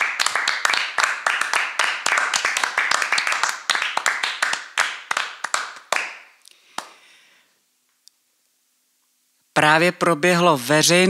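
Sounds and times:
people applauding: 0.0s - 7.0s.

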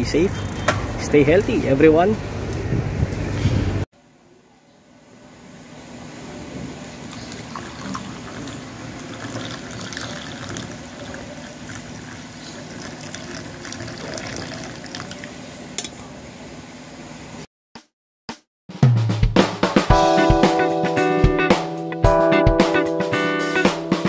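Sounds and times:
water pouring into mug: 7.0s - 15.4s.

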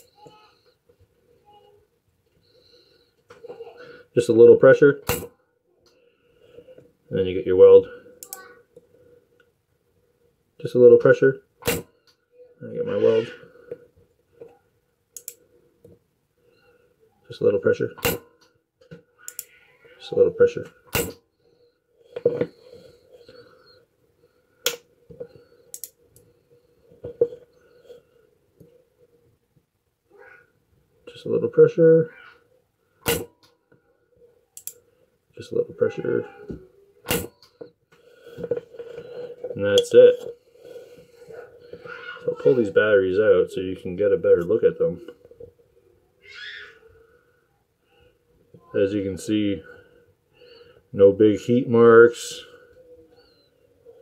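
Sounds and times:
spot welder sharp snap: 11.6s - 11.9s, 18.0s - 18.2s, 20.9s - 21.2s, 33.0s - 33.5s, 37.1s - 37.4s
faint clicks: 14.4s - 16.0s, 18.4s - 19.6s, 34.6s - 34.8s
small clicks: 15.2s - 15.4s, 19.2s - 19.6s, 25.7s - 26.3s, 34.6s - 34.8s.

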